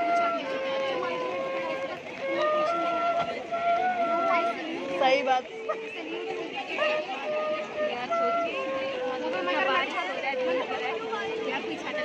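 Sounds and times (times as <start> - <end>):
bamboo flute melody: 0.0 - 12.0.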